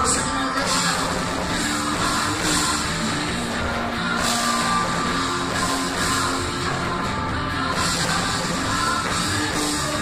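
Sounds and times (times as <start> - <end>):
drums and cymbals: 0.0 - 10.0
live rock band playing: 0.0 - 10.0
moving bass line: 0.0 - 10.0.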